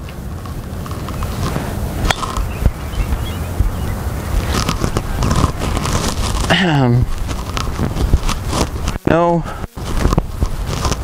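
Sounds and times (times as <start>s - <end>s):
wind rumble on microphone: 0.0s - 11.0s.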